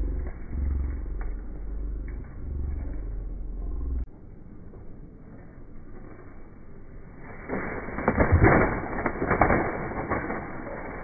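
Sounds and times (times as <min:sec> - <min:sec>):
low rumble buffeting microphone: 0:00.0 - 0:11.0.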